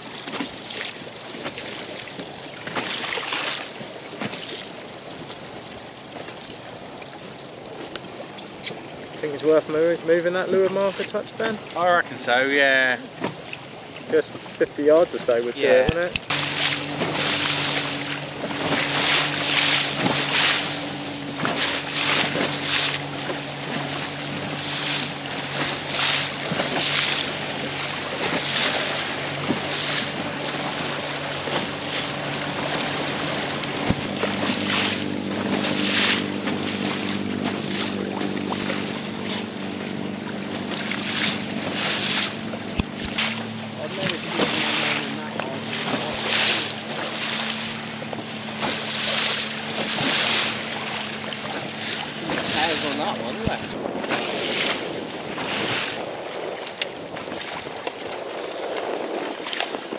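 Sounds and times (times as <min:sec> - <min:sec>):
choppy water slapping: 0:00.0 - 0:59.9
motorboat engine running: 0:00.0 - 0:59.9
wind buffeting microphone: 0:15.9 - 0:59.9.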